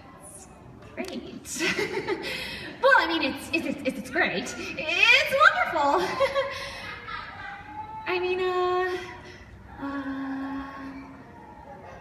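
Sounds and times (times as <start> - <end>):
low hall noise: 0.0 - 12.0.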